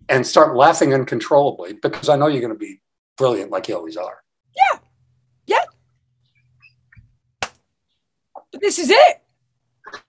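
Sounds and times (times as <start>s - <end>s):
person yelping: 4.6s - 4.8s, 5.5s - 5.7s.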